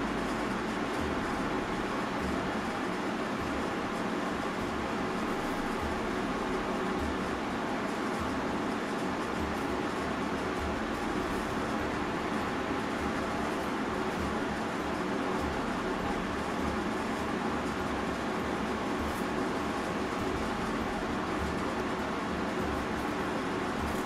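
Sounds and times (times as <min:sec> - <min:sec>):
steady hiss with low hum: 0:00.0 - 0:24.0.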